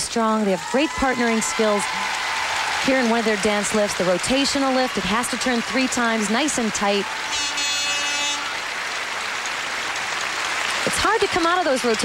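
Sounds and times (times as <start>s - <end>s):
crowd applause: 0.0s - 12.0s.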